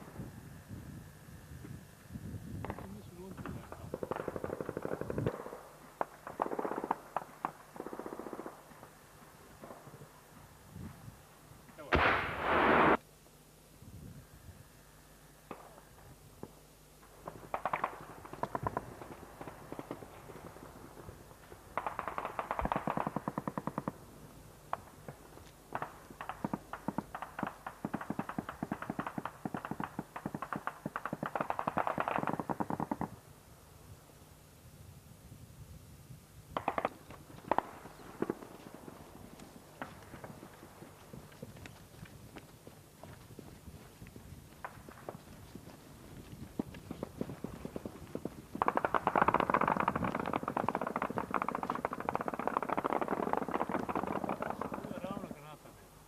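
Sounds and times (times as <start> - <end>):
heavy gun blast: 11.8 - 13.0.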